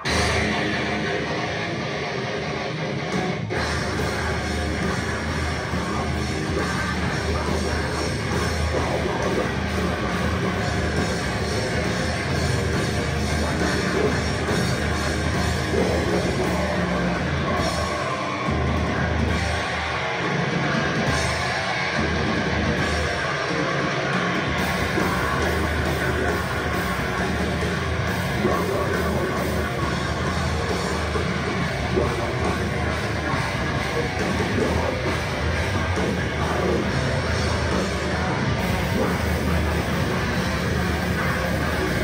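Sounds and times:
drum kit: 0:00.0 - 0:42.0
electric guitar: 0:00.0 - 0:42.0
live rock band playing: 0:00.0 - 0:42.0.

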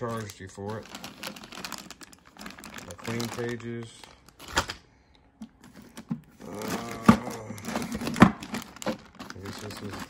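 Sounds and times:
blocks clacking in plastic bag: 0:00.0 - 0:04.8, 0:05.4 - 0:10.0.

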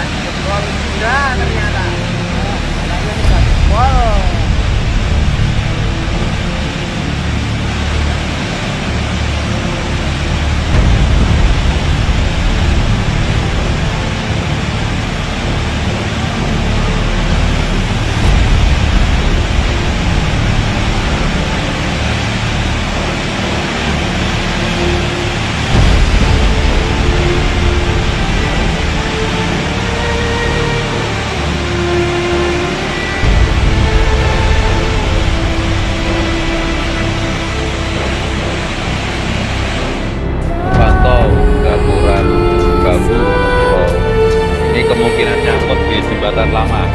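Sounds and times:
faint background music: 0:00.0 - 0:46.9
floodwater rushing down rocky channel: 0:00.0 - 0:46.9.

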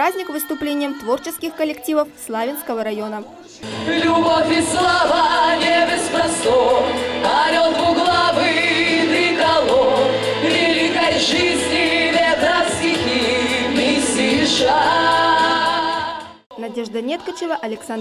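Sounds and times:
musical accompaniment: 0:00.0 - 0:18.0
women singing together: 0:00.0 - 0:18.0.

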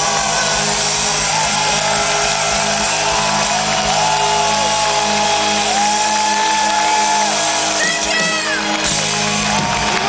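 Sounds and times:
live metal band sustained chord: 0:00.0 - 0:10.0.

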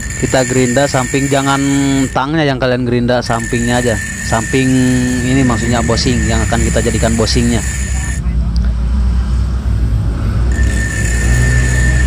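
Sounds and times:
grinding wheel on steel: 0:00.0 - 0:08.3, 0:10.5 - 0:12.0
motor hum: 0:10.5 - 0:12.0.

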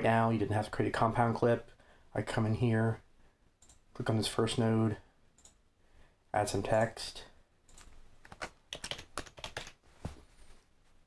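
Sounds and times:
computer keyboard typing: 0:07.7 - 0:09.8.

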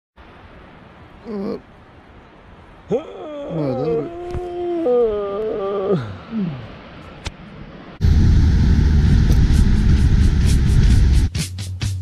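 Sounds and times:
steady background hiss: 0:00.2 - 0:11.3
man groaning: 0:01.2 - 0:01.7, 0:02.9 - 0:06.7.

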